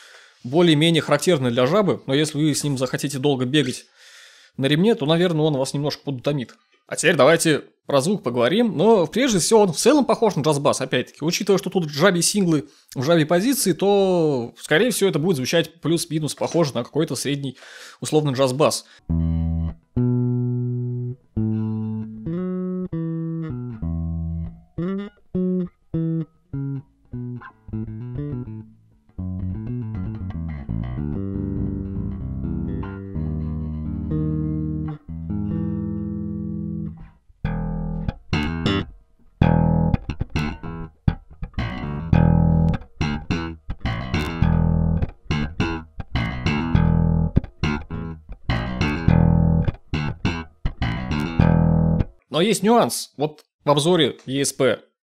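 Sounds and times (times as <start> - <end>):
electric bass played fingerstyle: 19.0 - 52.2.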